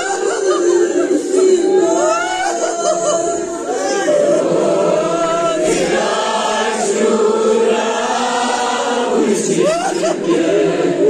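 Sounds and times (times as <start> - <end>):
group chanting a lament: 0.0 - 11.0.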